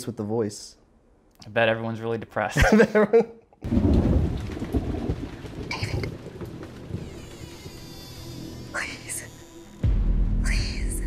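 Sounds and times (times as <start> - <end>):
thunder rumbling: 3.6 - 8.9
rain hissing: 3.6 - 9.8.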